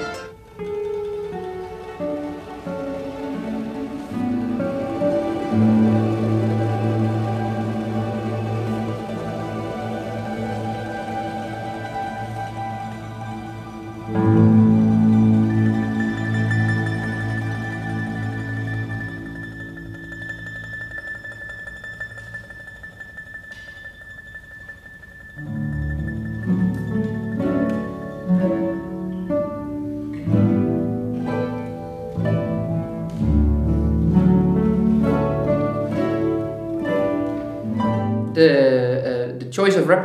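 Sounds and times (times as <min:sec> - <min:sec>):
mandolin orchestra playing: 0:00.0 - 0:20.9, 0:25.3 - 0:40.0.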